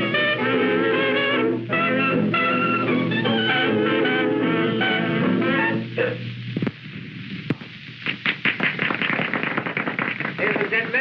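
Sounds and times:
band music: 0:00.0 - 0:06.4
film soundtrack hiss: 0:00.0 - 0:11.0
sharp pops: 0:06.5 - 0:11.0
quick irregular sharp clicks: 0:08.0 - 0:11.0.

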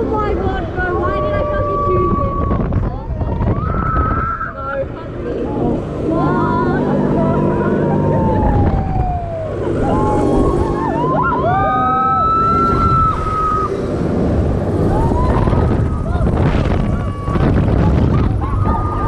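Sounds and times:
riders screaming and whooping: 0:00.9 - 0:04.8, 0:06.1 - 0:19.0
low steady drone: 0:04.4 - 0:19.0.

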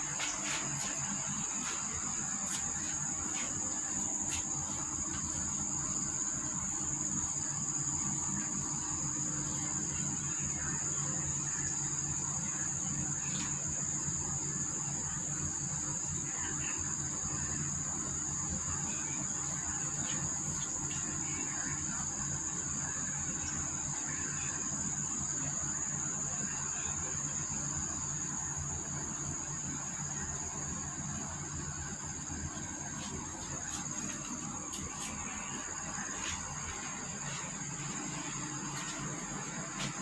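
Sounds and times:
insects droning: 0:00.0 - 0:40.0.

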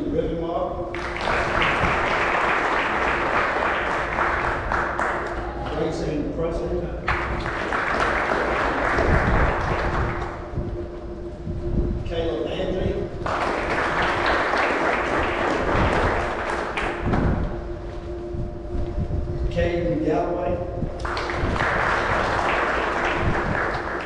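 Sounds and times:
steady hum: 0:00.0 - 0:24.0
audience clapping: 0:00.9 - 0:06.2, 0:07.0 - 0:10.9, 0:13.2 - 0:17.6, 0:21.0 - 0:24.0.

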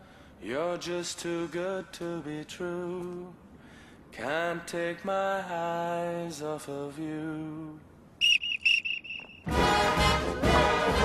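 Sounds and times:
whistle blasts: 0:08.2 - 0:09.6
marching band brass: 0:09.4 - 0:11.0.

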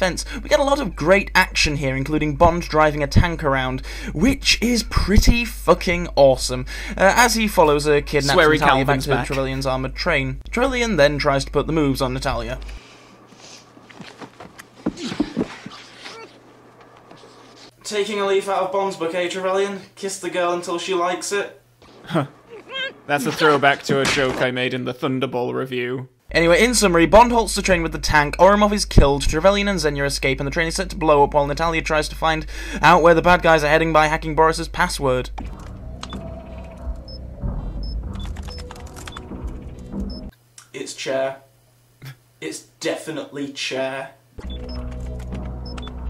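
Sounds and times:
muffled whimpering: 0:14.8 - 0:17.7, 0:22.0 - 0:23.4
background film music: 0:35.4 - 0:40.3, 0:44.4 - 0:46.0
computer keyboard typing: 0:38.2 - 0:39.3.

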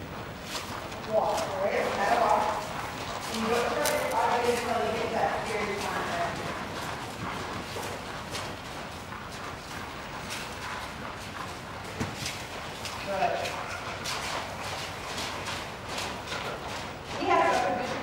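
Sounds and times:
horse walking on sand: 0:00.0 - 0:18.0
person's footsteps: 0:00.0 - 0:18.0.

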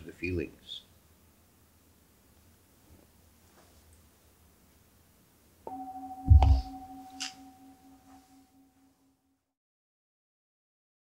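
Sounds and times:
singing bowl ringing: 0:05.7 - 0:08.8
loud low thump: 0:06.3 - 0:06.8.

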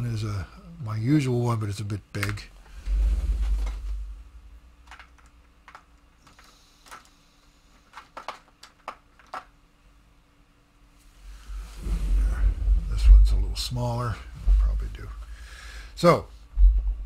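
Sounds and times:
small items clicking and tapping: 0:04.8 - 0:09.5.

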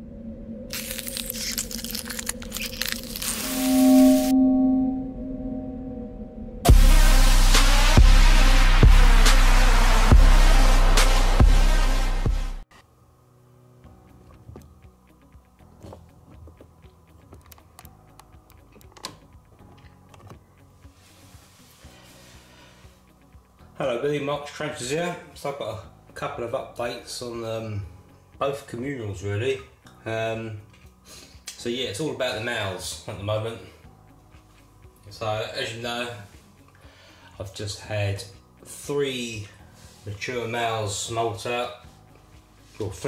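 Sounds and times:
low steady hum: 0:00.0 - 0:06.6
steady low drone: 0:00.0 - 0:12.6
crackling and crunching with clicks: 0:00.7 - 0:03.6.

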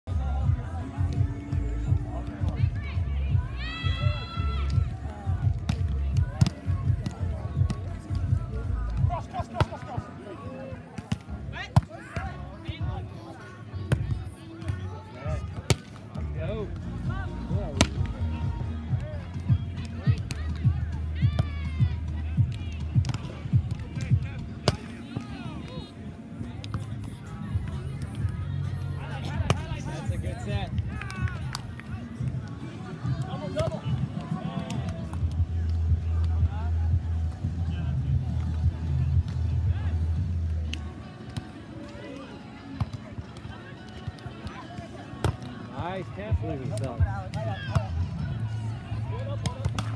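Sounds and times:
background music with heavy bass: 0:00.1 - 0:09.6, 0:16.2 - 0:24.6, 0:33.0 - 0:41.2
players shouting: 0:02.8 - 0:10.7, 0:29.0 - 0:35.1
hands slapping volleyball: 0:22.5 - 0:24.8.

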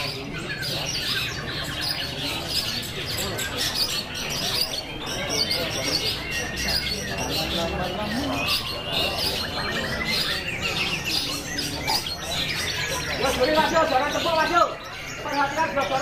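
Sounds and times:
background chatter of voices: 0:00.0 - 0:16.0
bird singing chirps and trills: 0:00.0 - 0:16.0.

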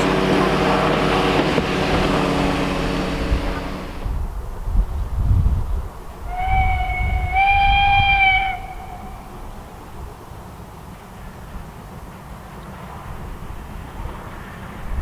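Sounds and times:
steam locomotive whistle: 0:00.0 - 0:04.1, 0:06.3 - 0:09.6
low rumbling: 0:00.0 - 0:10.2
steam train running: 0:00.0 - 0:15.0.

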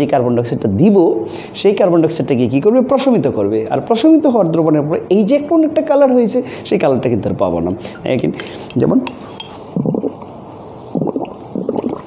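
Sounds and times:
glass flask clinking: 0:08.2 - 0:09.6.

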